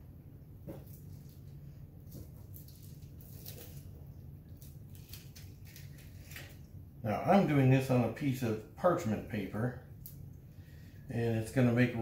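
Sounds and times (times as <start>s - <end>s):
steady low hum: 0.0s - 12.0s
plastic sheet crinkling: 0.9s - 6.7s.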